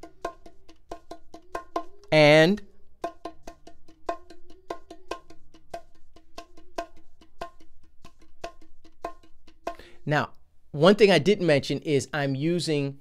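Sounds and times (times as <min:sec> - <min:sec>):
bongos played with fingertips: 0:00.0 - 0:10.4.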